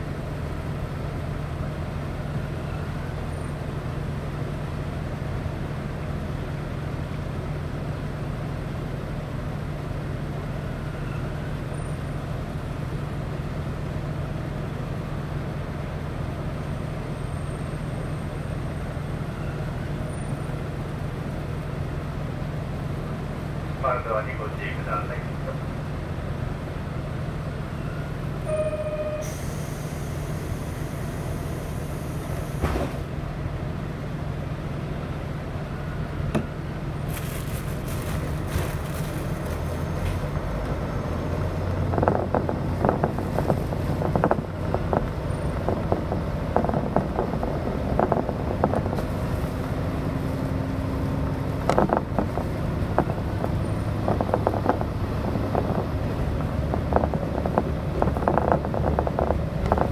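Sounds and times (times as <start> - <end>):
diesel railcar engine: 0.0 - 59.9
short electronic tone: 28.5 - 29.4
wheels clicking over rail joints: 41.7 - 50.2, 51.1 - 59.9.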